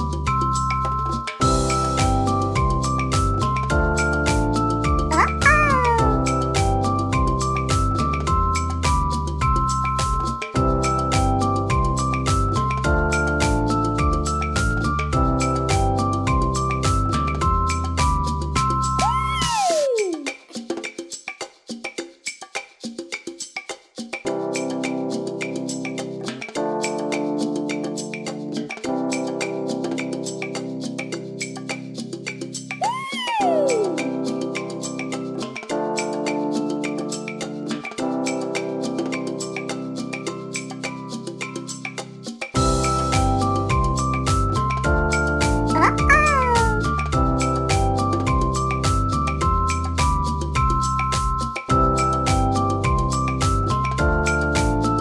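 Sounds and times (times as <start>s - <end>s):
background music with beat: 0.0s - 5.2s, 6.0s - 55.0s
cartoon cat meow: 5.1s - 6.3s, 19.0s - 20.4s, 32.8s - 34.2s, 45.7s - 47.0s.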